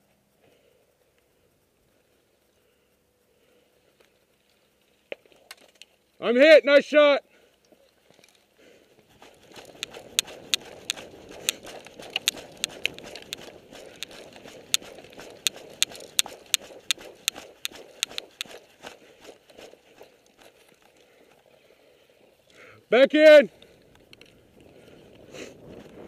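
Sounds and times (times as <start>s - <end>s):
steady rustle: 7.3s - 22.6s
footsteps crunching on dirt and twigs: 9.0s - 21.2s
sharp clicks: 9.2s - 20.5s.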